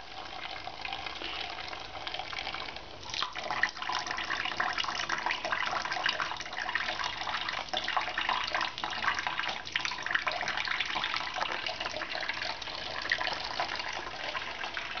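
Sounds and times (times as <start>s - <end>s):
tap water trickling into sink: 3.0s - 15.0s.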